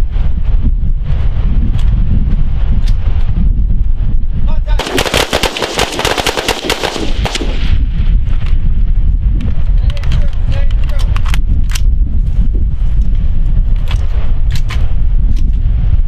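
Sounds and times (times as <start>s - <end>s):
wind buffeting microphone: 0.0s - 16.0s
rapid rifle gunshots: 4.8s - 7.7s.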